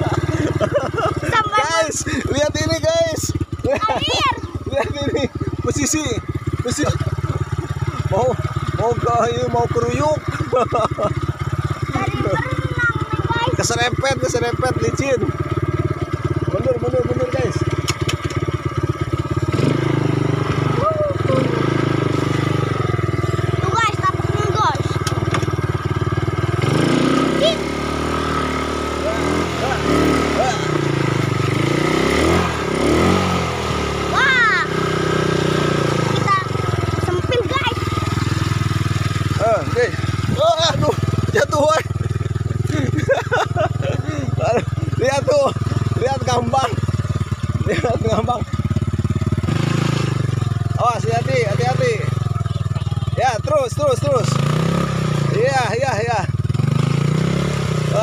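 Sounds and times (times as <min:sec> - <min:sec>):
quad bike engine revving: 0:00.0 - 0:58.0.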